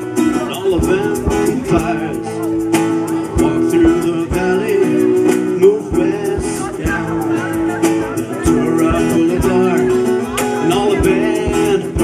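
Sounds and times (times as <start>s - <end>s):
acoustic guitars strumming: 0.0s - 12.0s
low beat: 0.0s - 12.0s
person singing held melody: 0.0s - 12.0s.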